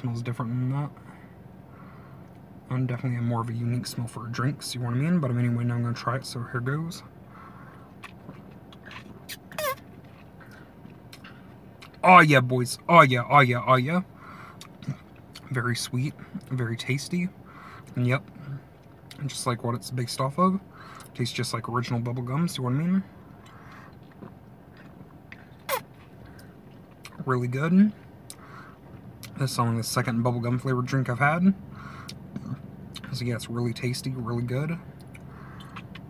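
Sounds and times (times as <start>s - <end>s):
squeak falling in pitch: 9.3s - 9.9s
mouth clicks: 35.0s - 36.0s.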